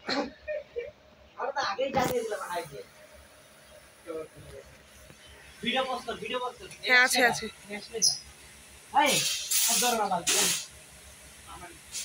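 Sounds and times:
short loud hiss: 9.0s - 10.8s.

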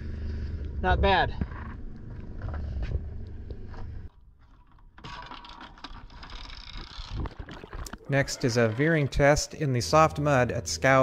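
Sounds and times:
underwater clicks: 6.7s - 8.2s.

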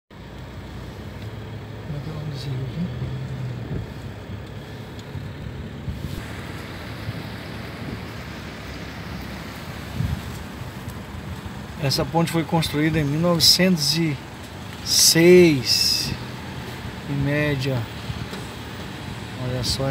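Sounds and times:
car engine and tyre noise: 0.1s - 19.9s
bright hiss: 6.0s - 10.8s.

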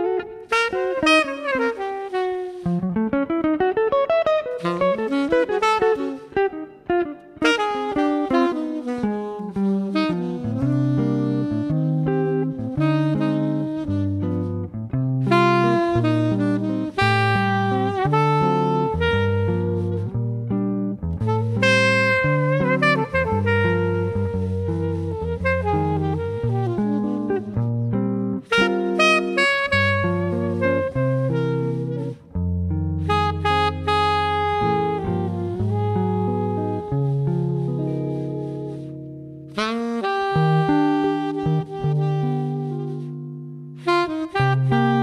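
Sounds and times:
alto saxophone melody: 0.0s - 45.0s
electric guitar: 0.0s - 45.0s.

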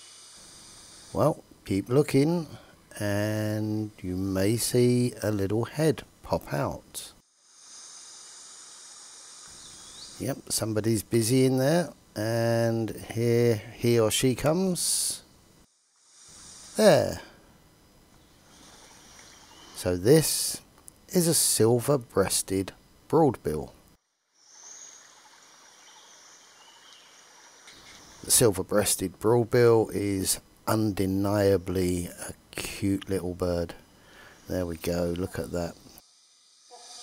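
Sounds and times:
insects chorus hissing: 0.0s - 37.0s.

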